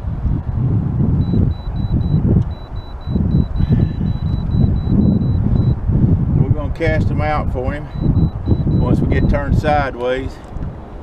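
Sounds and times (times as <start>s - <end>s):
wind buffeting microphone: 0.0s - 11.0s
high electronic beeps: 1.2s - 5.8s, 7.9s - 9.4s.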